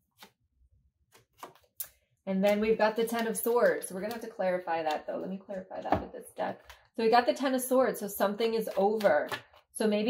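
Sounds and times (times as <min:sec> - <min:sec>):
cards clicking and flicking: 0:01.1 - 0:05.1, 0:08.7 - 0:09.6.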